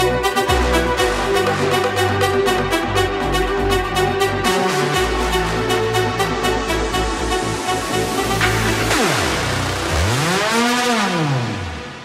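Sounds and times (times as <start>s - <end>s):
synthesizer tone sweeping in pitch: 0.0s - 12.0s.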